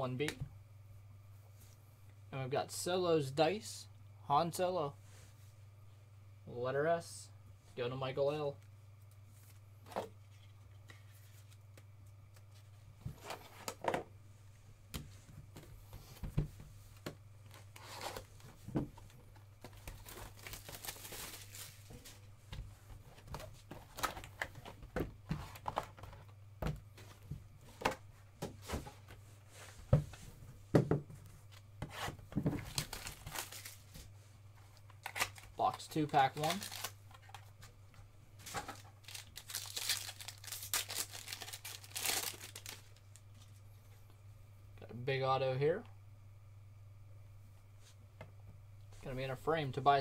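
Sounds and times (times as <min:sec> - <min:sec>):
low electrical hum: 0:00.0 - 0:50.0
wrapping tearing: 0:19.8 - 0:21.8, 0:32.7 - 0:33.8, 0:36.2 - 0:37.0, 0:39.0 - 0:43.2.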